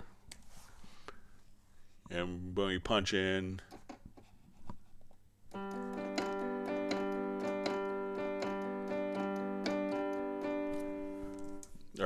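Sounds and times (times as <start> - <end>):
keyboard instrument playing chords: 5.5 - 11.8.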